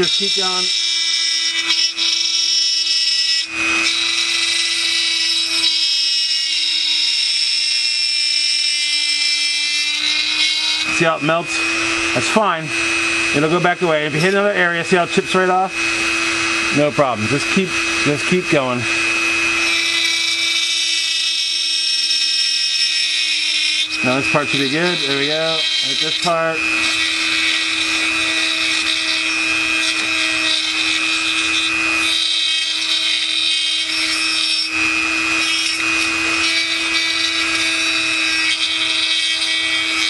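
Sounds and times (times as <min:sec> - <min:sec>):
rotary tool grinding plastic: 0:00.0 - 0:40.0.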